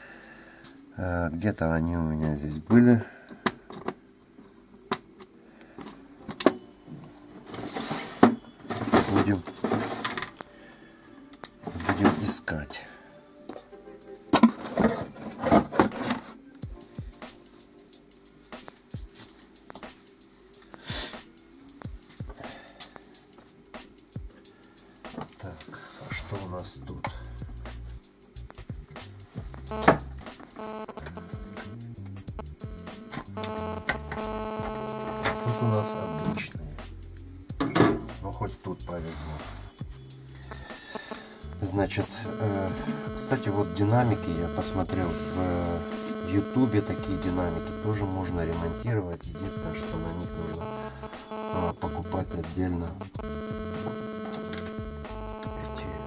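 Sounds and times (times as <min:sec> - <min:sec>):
music with sustained notes: 0:05.3 - 0:15.4.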